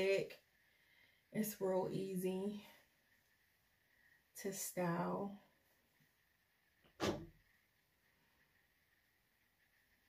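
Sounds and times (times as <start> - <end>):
woman saying um: 1.4 - 2.7.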